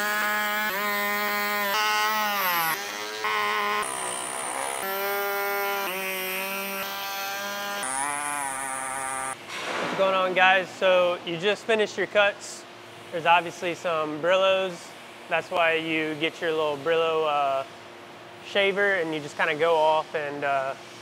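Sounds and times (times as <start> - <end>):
power tool cutting plastic: 0.0 - 9.4.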